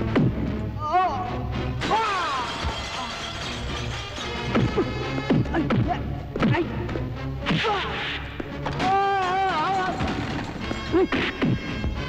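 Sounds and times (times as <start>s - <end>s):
debris smashing: 1.8s - 4.7s, 8.7s - 10.9s.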